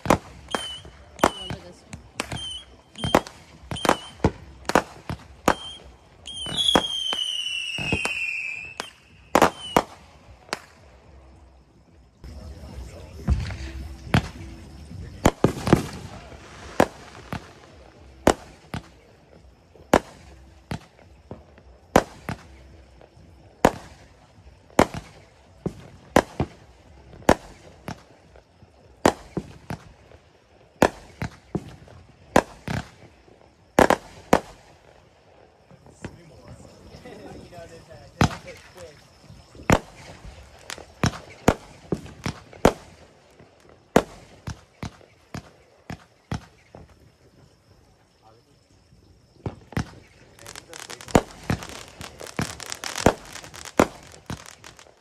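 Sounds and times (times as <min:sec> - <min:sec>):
fireworks bangs and pops: 0:00.0 - 0:55.0.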